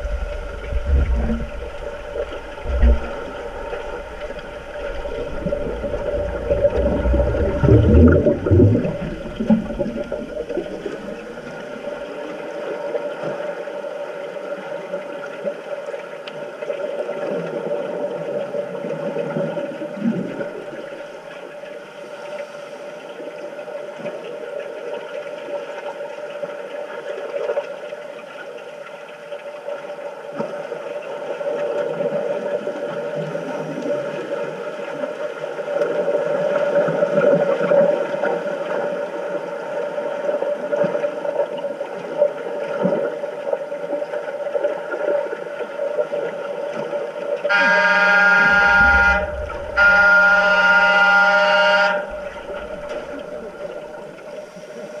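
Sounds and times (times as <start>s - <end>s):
underwater signal horn buzzing: 0.0s - 11.5s, 47.5s - 54.0s
steady underwater hum: 0.0s - 55.0s
water churned by swimmers' fins: 0.0s - 55.0s.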